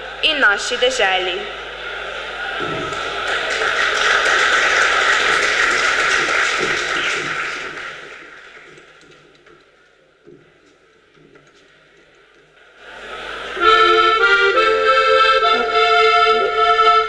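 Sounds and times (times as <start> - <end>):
audience applauding: 1.6 - 14.0.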